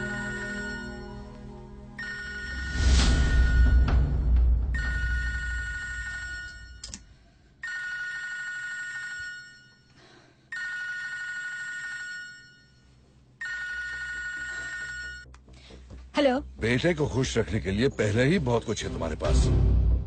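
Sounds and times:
telephone ringing: 0.0s - 1.2s, 2.0s - 4.1s, 4.7s - 7.0s, 7.6s - 15.3s
low background music: 0.0s - 6.9s, 15.3s - 20.0s.

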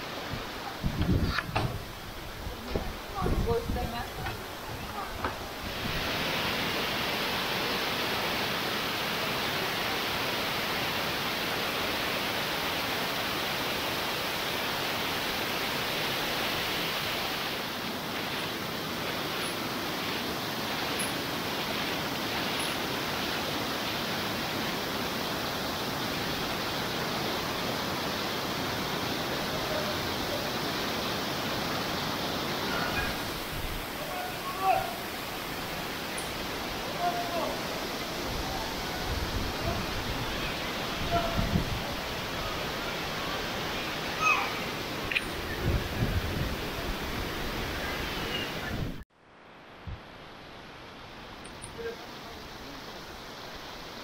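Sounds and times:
stream rushing over rocks: 0.0s - 54.0s.

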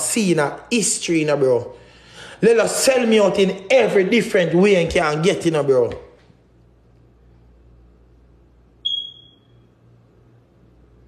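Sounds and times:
high-pitched electronic beep: 8.8s - 9.6s.

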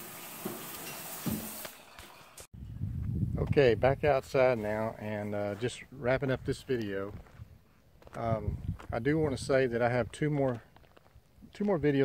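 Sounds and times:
shower water running: 0.0s - 2.5s.

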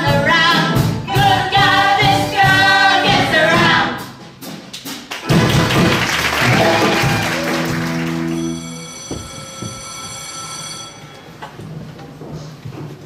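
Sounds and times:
audience applause: 5.1s - 8.6s.

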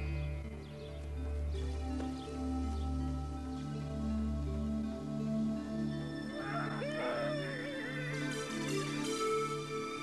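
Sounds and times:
background music low notes: 0.0s - 10.0s.

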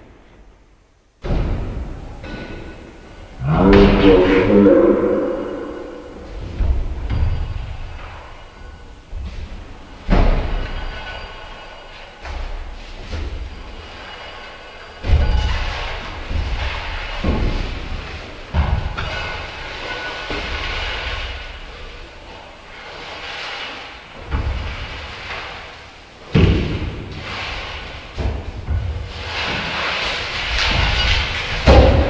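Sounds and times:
rumbling rattling noise: 1.4s - 23.5s.

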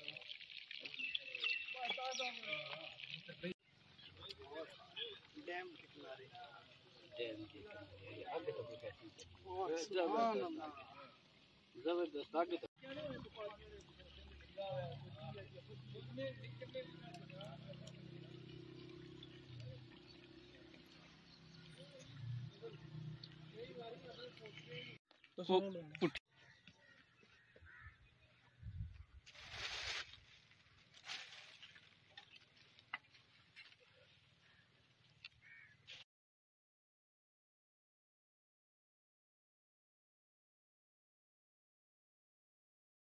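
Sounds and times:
hot oil sizzling: 0.0s - 24.5s.

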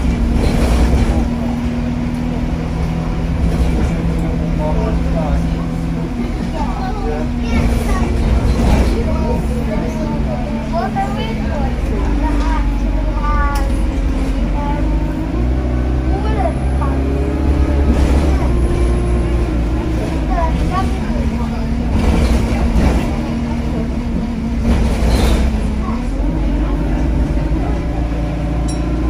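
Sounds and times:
bus engine running: 0.0s - 29.0s
road rumble: 0.0s - 29.0s.

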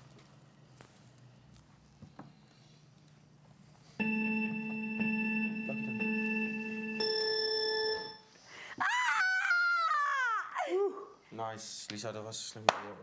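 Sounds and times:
electronic signal tone: 4.0s - 8.3s
high voice whooping: 8.8s - 11.1s.

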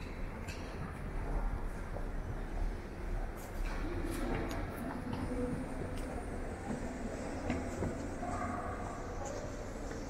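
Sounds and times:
low rumble of echoing hall: 0.0s - 10.0s.

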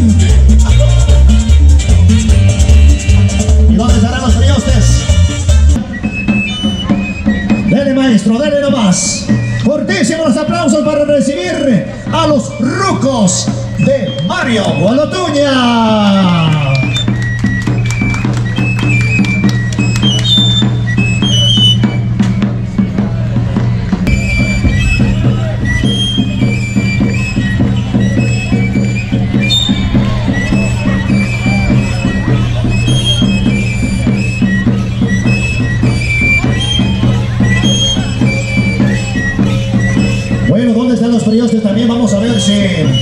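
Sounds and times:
flute melody: 0.0s - 43.0s.

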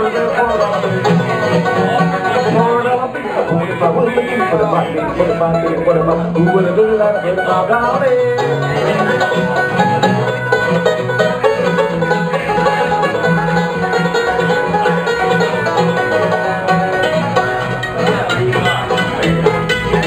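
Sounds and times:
bluegrass string band playing: 0.0s - 20.0s.

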